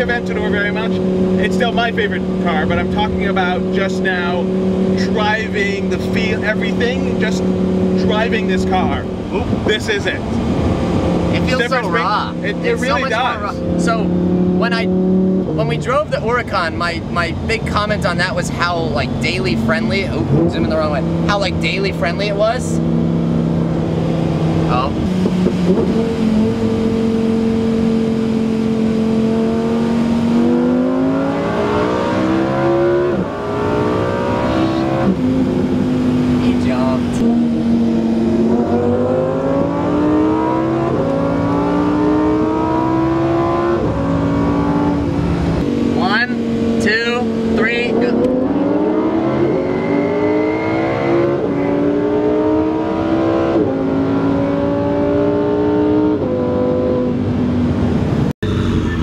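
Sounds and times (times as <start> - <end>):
car engine accelerating: 0.0 - 59.0.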